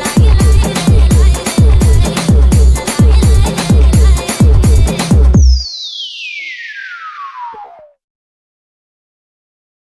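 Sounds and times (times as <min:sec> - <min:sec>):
synthesized downward sweep: 0:05.4 - 0:08.0.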